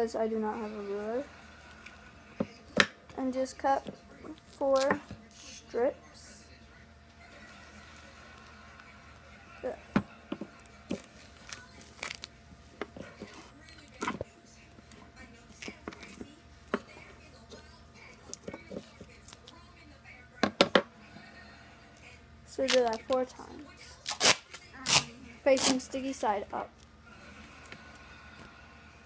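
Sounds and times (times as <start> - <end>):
tape being handled: 10.3 - 14.3, 24.0 - 25.9
scissors snipping tape: 24.1 - 25.8.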